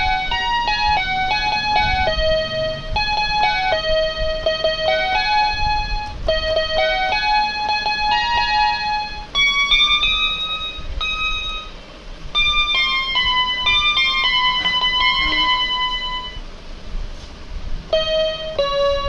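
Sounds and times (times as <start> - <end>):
toy keyboard playing melody: 0.0 - 16.4, 17.9 - 19.0.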